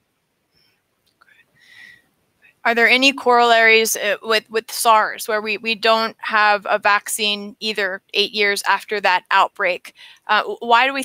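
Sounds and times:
faint breath intake: 1.6s - 2.0s.

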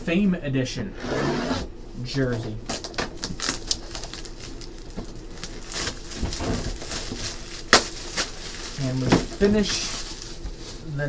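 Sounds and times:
cardboard box and plastic rustling: 2.7s - 11.0s.

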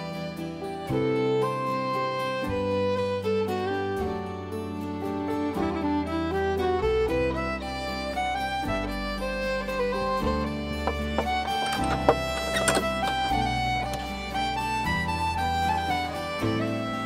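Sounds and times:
bowed string music with bass: 0.0s - 17.0s.

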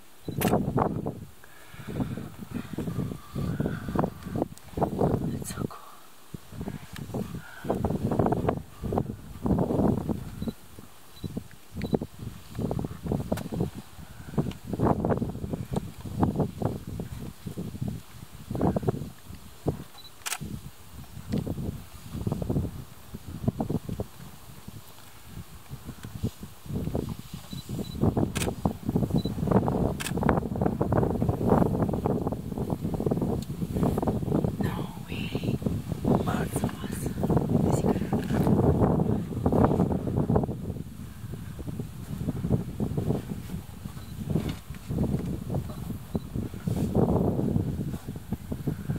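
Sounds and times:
sharp clicks: 0.2s - 0.6s.

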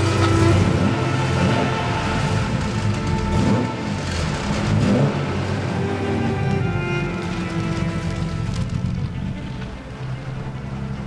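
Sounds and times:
background music: 0.0s - 11.0s
car engine revving: 0.0s - 11.0s.

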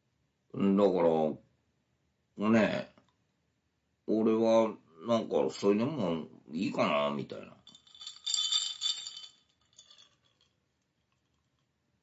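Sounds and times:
drinking glass clinking: 7.7s - 10.3s.

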